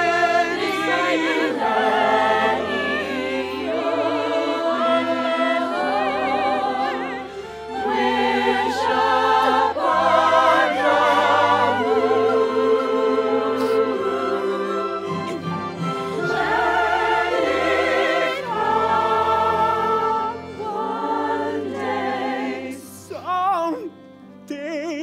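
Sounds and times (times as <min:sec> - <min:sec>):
orchestra holding low notes: 0:00.0 - 0:23.3
choir and solo voices singing: 0:00.0 - 0:23.5.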